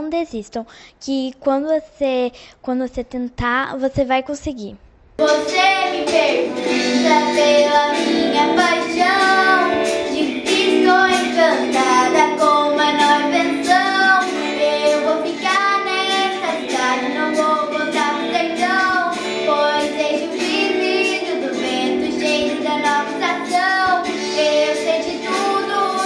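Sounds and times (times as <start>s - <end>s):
girl singing: 0.0s - 26.0s
instrumental backing track: 5.2s - 26.0s.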